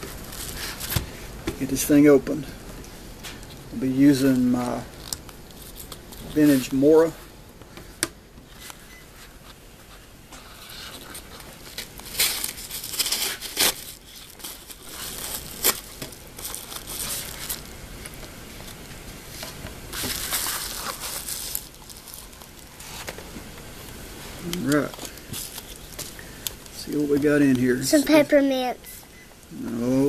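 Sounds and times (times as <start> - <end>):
paper tearing and crinkling: 10.4 - 18.8, 19.9 - 23.2.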